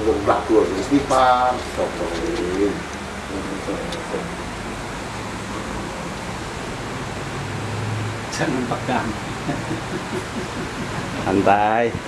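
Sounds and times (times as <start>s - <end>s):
steady low hum: 0.0s - 12.0s
dove cooing: 9.3s - 11.3s.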